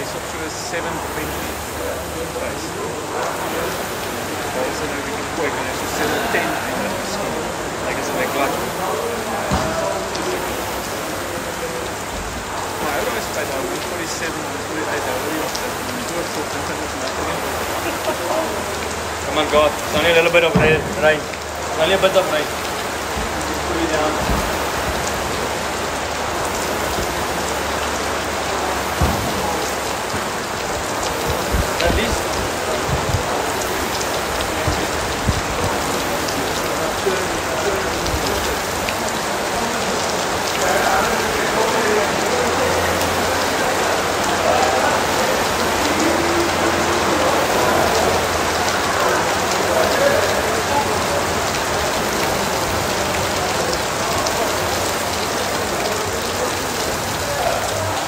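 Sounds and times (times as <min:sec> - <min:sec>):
rain falling on a roof: 0:00.0 - 0:58.0.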